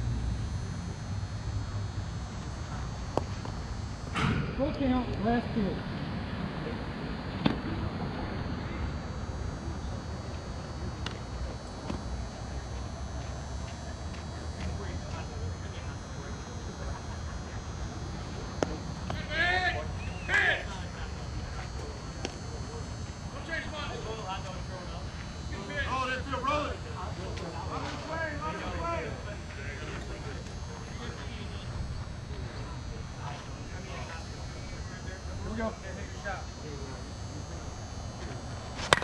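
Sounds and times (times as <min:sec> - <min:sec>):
players shouting: 0:19.0 - 0:20.9.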